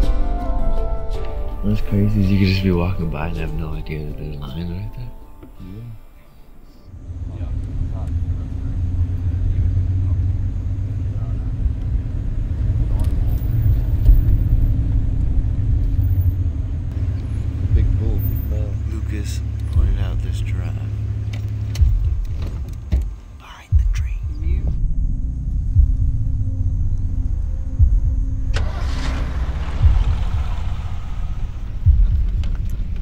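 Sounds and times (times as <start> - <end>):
vehicle engine driving: 1.2 - 23.4, 24.0 - 33.0.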